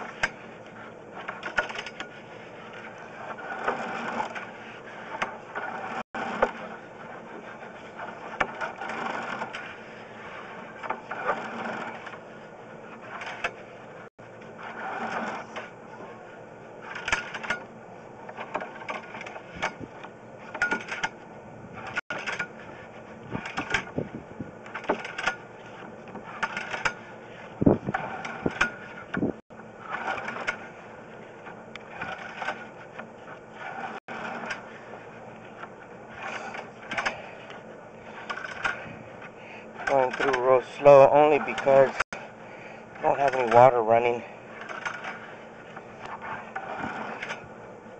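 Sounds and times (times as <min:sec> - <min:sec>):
cable rattling and scraping: 0:00.0 - 0:47.9.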